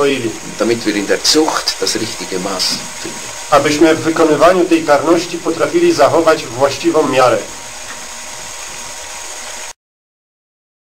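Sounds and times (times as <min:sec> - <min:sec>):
steady recording hiss: 0:00.0 - 0:09.8.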